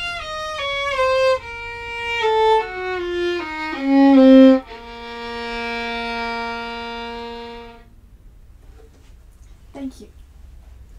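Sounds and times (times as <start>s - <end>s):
violin long low note: 0.0s - 7.9s.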